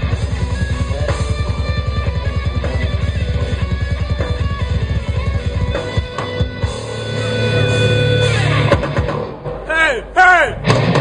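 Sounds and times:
death metal band music: 0:00.0 - 0:11.0
loud shouted yells: 0:09.7 - 0:10.7.

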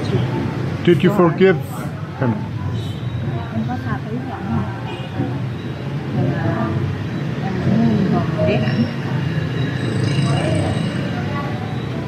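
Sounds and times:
woman talking: 0:03.3 - 0:05.4, 0:06.2 - 0:09.1.

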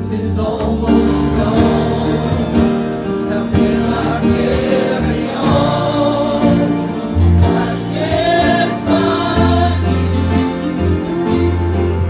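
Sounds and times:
gospel singing with band: 0:00.0 - 0:12.0.

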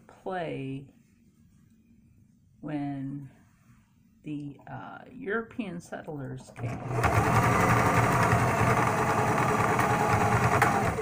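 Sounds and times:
electric sewing machine stitching: 0:06.4 - 0:11.0.

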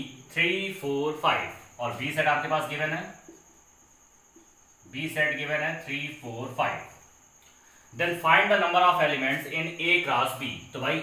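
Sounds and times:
man speaking: 0:00.0 - 0:03.3, 0:04.9 - 0:07.0, 0:07.9 - 0:11.0
faint high-pitched whine: 0:00.0 - 0:11.0.

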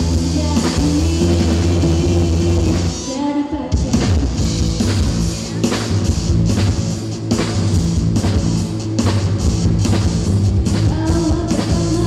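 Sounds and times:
electric bass: 0:00.0 - 0:03.0, 0:03.8 - 0:12.0
drum kit: 0:00.0 - 0:12.0.

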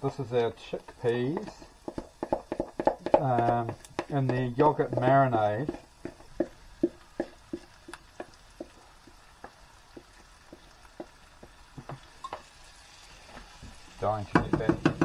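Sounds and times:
faint sizzle of food in pan: 0:00.0 - 0:15.0
spoon knocking on bowl and pan: 0:01.4 - 0:07.3, 0:14.3 - 0:15.0.

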